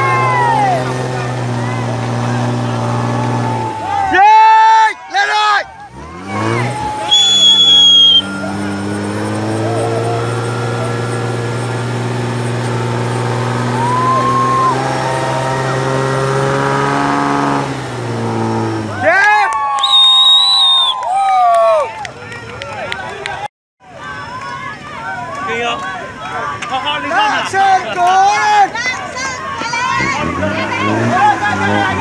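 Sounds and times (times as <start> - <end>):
people shouting: 0.0 - 12.1, 13.3 - 16.2, 24.0 - 32.0
off-road truck engine revving: 0.0 - 20.9, 26.4 - 32.0
shrill whistle-like tone: 6.9 - 9.2, 19.7 - 21.1.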